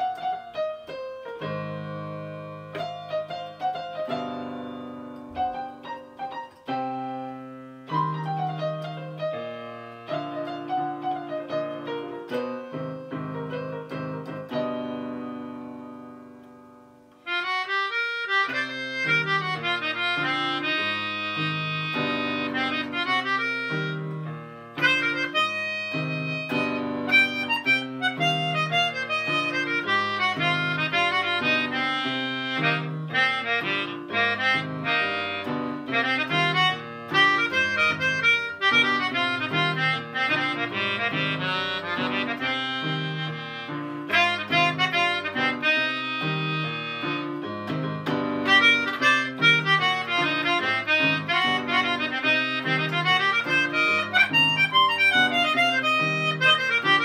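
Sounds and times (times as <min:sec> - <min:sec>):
reedy melodica melody: 0:00.0 - 0:16.4, 0:17.0 - 0:57.0
keyboard chords: 0:00.0 - 0:57.0.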